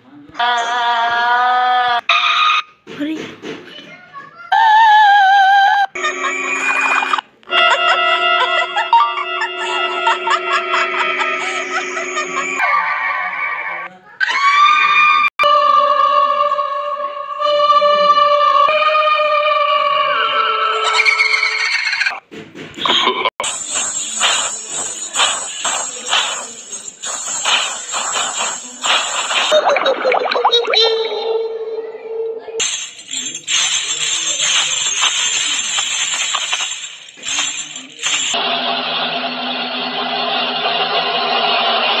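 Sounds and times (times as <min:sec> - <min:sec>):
music: 0:15.4 - 0:20.9.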